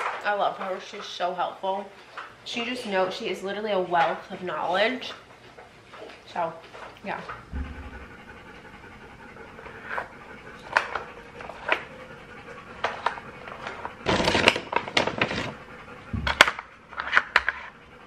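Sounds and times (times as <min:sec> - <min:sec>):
dog panting: 0:00.5 - 0:18.0.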